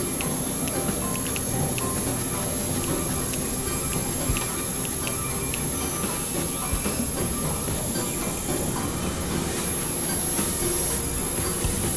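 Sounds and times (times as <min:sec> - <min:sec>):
high whistling tone: 0:00.0 - 0:11.9
layered electronic noise drones: 0:00.0 - 0:11.9.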